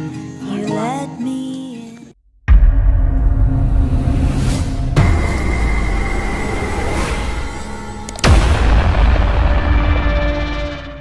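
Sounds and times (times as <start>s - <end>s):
high whine: 2.5s - 11.0s.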